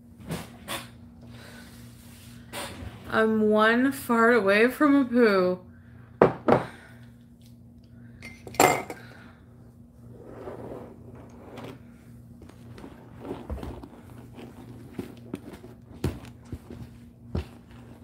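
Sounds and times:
handbag rustling: 11.6 - 18.0.

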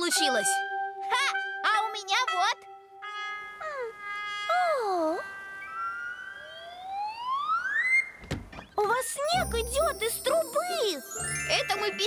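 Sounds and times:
cartoon music with sliding tones: 3.5 - 8.2, 9.2 - 12.0
rising whistle-like glide: 4.5 - 8.2.

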